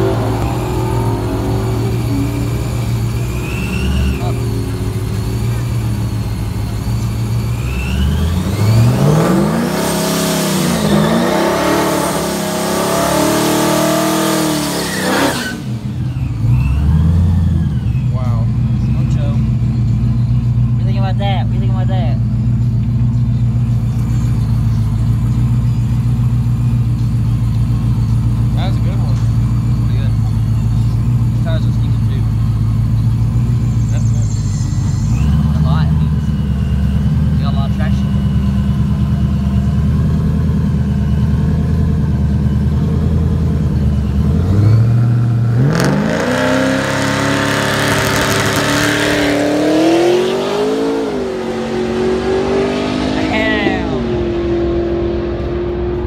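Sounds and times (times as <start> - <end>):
car engine idling and accelerating: 0.0 - 56.0.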